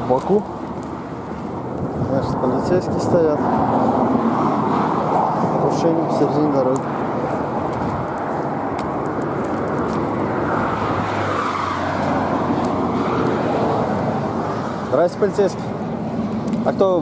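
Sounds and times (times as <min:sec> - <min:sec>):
highway traffic rumble: 0:00.0 - 0:17.0
vehicle passing: 0:00.0 - 0:17.0.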